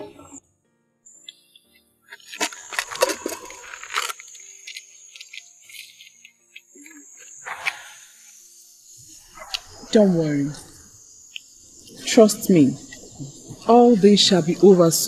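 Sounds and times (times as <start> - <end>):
crickets chirring: 1.1 - 15.0.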